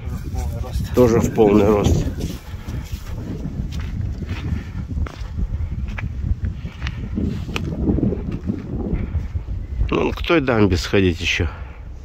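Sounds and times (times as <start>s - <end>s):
footsteps crunching on snow: 0.0s - 9.5s
wind buffeting microphone: 0.0s - 12.0s.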